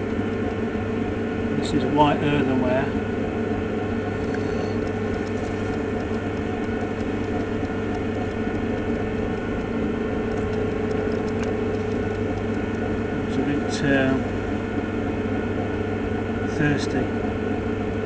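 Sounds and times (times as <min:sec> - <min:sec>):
potter's wheel motor humming: 0:00.0 - 0:18.0.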